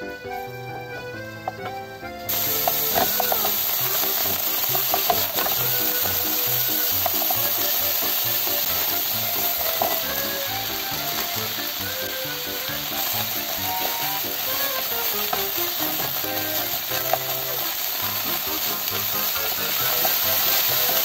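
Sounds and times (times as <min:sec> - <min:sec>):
wooden spatula scraping a pan: 0:02.3 - 0:10.4
pork sizzling in hot oil: 0:02.3 - 0:21.0.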